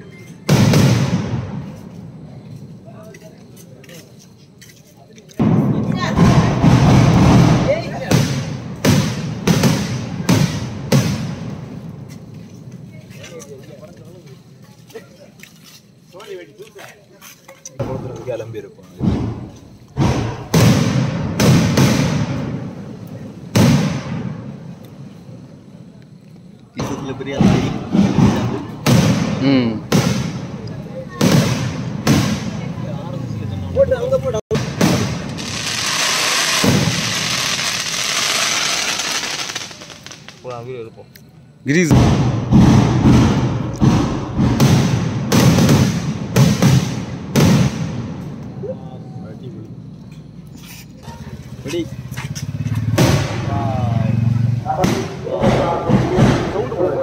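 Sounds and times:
firework shells booming: 0:00.4 - 0:02.1, 0:05.4 - 0:12.9, 0:17.8 - 0:25.6, 0:26.7 - 0:33.0, 0:34.5 - 0:40.7, 0:41.7 - 0:48.5, 0:52.4 - 0:57.0.

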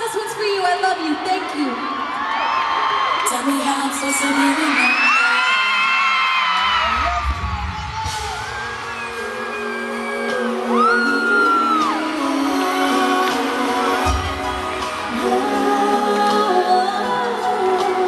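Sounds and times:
crowd screaming: 0:01.1 - 0:18.0
live band playing: 0:07.0 - 0:18.0.

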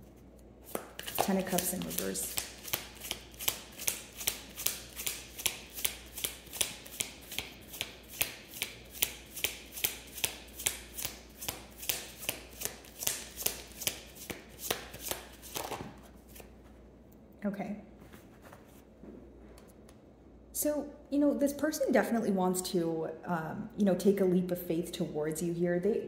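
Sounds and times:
cards being shuffled: 0:00.0 - 0:16.6.

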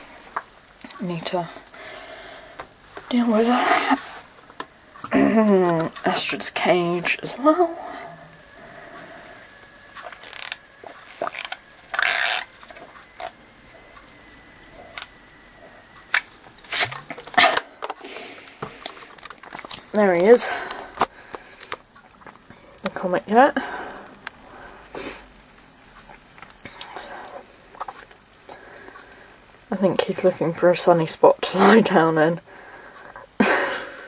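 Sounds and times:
plastic bottle clicks and creaks: 0:10.0 - 0:13.4, 0:18.6 - 0:19.9
person sniffing: 0:24.8 - 0:25.3.

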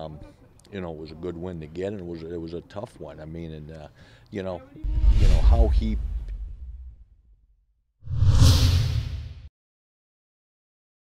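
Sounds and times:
whoosh sound effect: 0:04.8 - 0:07.0, 0:08.0 - 0:09.5.

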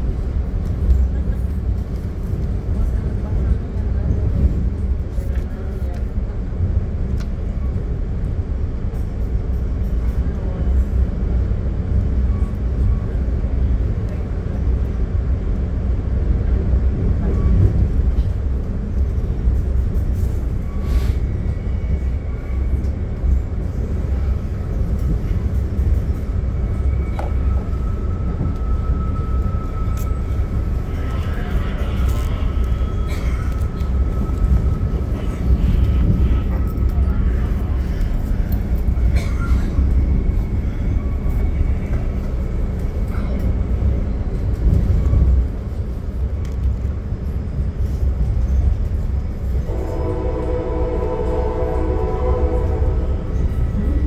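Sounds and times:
train car rumbling over rails: 0:00.0 - 0:54.0
train horn chord: 0:49.7 - 0:53.2.

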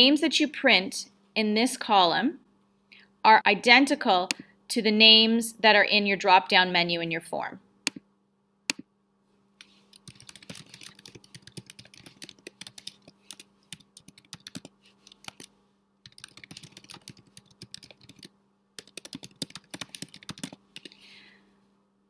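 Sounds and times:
faint steady hum: 0:00.0 - 0:22.0
keyboard typing: 0:09.6 - 0:21.1.

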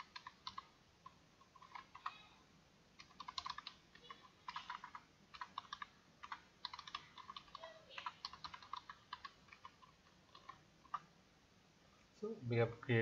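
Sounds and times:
computer keyboard typing: 0:00.0 - 0:02.3, 0:03.0 - 0:11.1.

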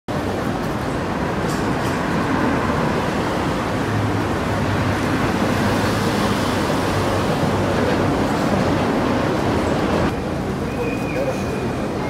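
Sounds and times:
distant traffic wash: 0:00.1 - 0:12.0.

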